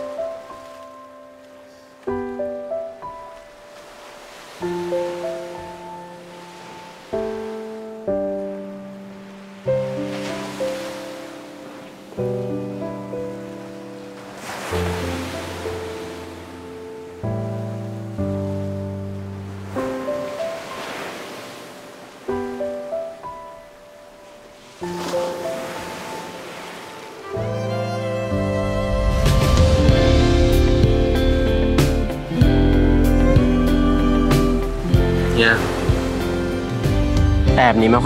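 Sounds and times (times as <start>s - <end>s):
slow gentle piano music: 0.0s - 38.0s
surf washing on beach: 0.0s - 38.0s.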